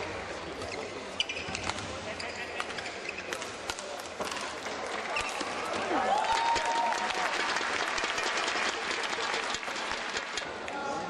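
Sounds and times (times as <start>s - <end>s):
crowd chatter: 0.0s - 11.0s
shoes squeaking on court: 0.5s - 3.7s.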